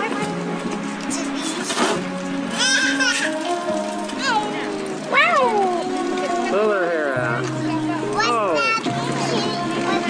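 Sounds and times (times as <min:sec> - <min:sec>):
background music with held notes: 0:00.0 - 0:10.0
child squealing: 0:02.6 - 0:03.4.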